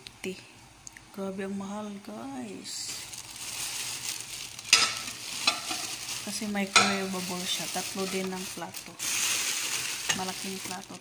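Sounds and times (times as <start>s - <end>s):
plastic bag rustling and crinkling: 2.7s - 11.0s.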